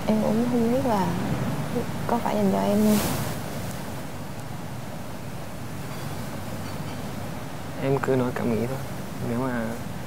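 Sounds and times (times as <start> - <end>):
steady outdoor night ambience: 0.0 - 10.0.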